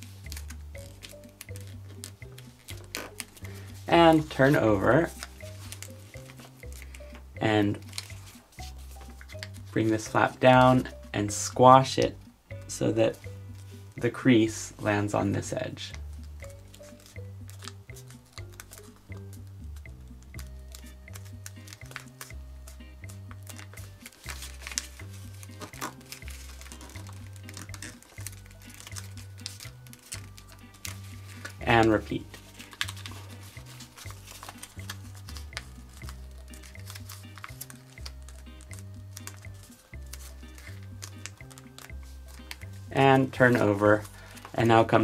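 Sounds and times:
paper crinkling: 0:00.0 - 0:09.6, 0:16.2 - 0:19.4, 0:20.3 - 0:44.6
background music with bass: 0:00.0 - 0:45.0.

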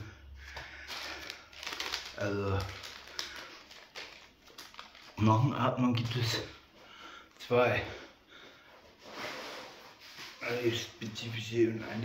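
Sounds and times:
paper rustling and crackling: 0:00.5 - 0:06.2.

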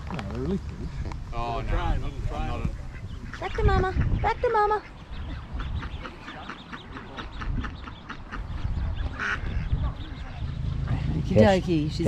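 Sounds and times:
ducks and ducklings calling: 0:01.8 - 0:12.0.

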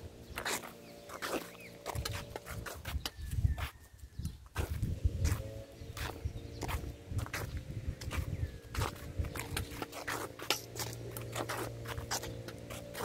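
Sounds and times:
footsteps on gravel: 0:00.0 - 0:13.0
wind on microphone: 0:01.9 - 0:10.2.

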